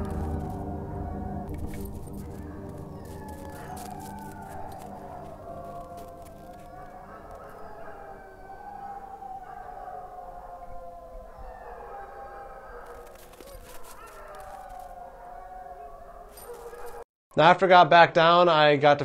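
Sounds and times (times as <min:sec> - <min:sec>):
dogs yipping: 0:00.0 - 0:17.0
sled dogs howling: 0:00.0 - 0:17.0.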